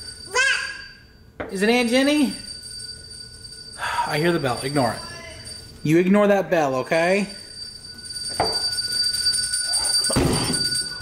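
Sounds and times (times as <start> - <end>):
service bell ringing: 0.0 - 11.0.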